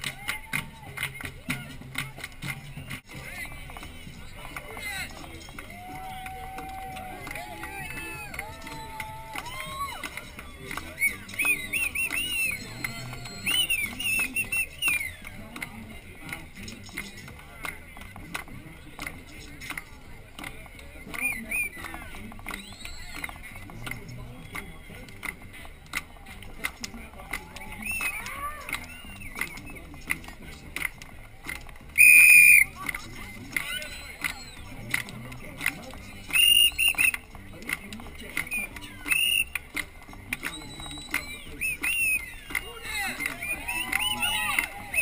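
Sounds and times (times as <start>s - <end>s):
parade crowd voices and shouts: 0.0s - 45.0s.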